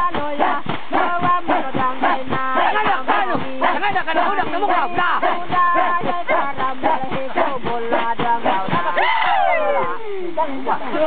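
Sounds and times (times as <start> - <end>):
group singing: 0.0 - 11.0
voices yelping and shouting: 8.8 - 10.4.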